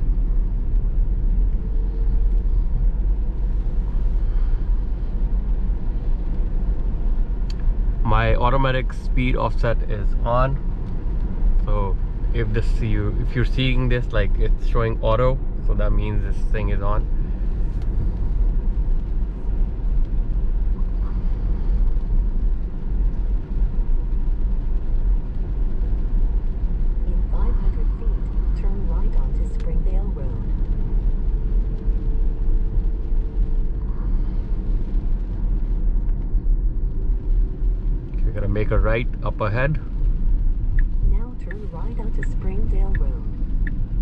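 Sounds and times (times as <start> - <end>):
road rumble and tyre noise: 0.0 - 44.0.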